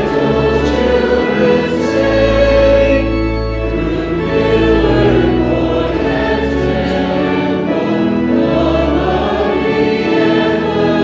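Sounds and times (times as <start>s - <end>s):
congregation singing a hymn: 0.0s - 11.0s
instrumental accompaniment: 0.0s - 11.0s.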